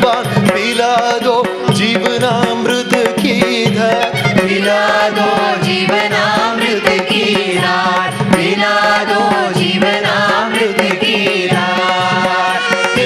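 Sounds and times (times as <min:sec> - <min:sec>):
group singing devotional song: 0:01.7 - 0:13.0.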